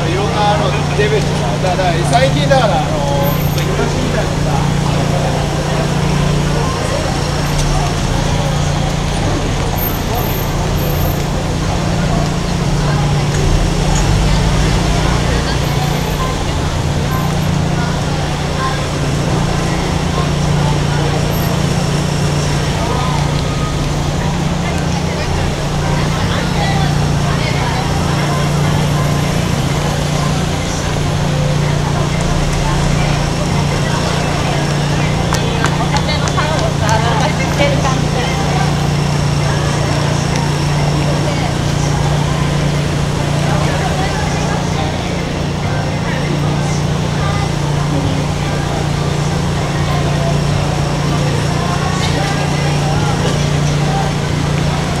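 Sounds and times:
cars passing: 0.0s - 55.0s
people talking: 0.0s - 55.0s.

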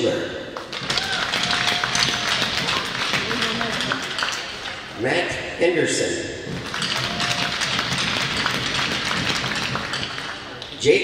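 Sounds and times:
crowd applauding: 0.6s - 4.9s, 6.5s - 10.6s.

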